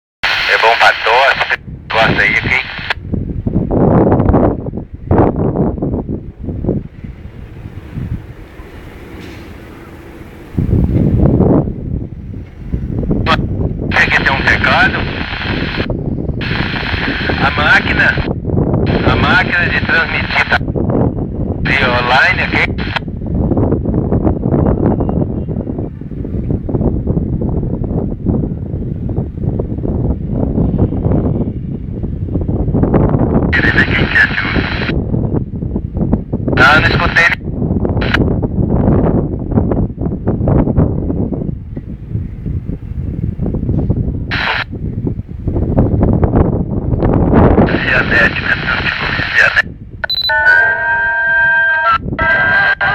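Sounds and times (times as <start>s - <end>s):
noisy radio transmission: 0.2s - 3.0s, 13.2s - 20.7s, 21.6s - 23.0s, 33.5s - 35.0s, 36.6s - 37.4s, 44.3s - 44.7s, 47.6s - 52.9s
high-pitched radio burst: 13.9s - 18.3s, 33.6s - 34.9s, 47.7s - 52.9s
high electronic beep: 50.0s - 52.9s
steady multi-pitch electronic tone: 50.0s - 52.9s.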